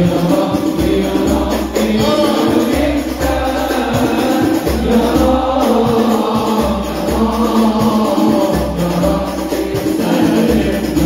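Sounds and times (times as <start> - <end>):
amplified leading voice: 0.0 - 6.1
men singing together: 0.0 - 11.0.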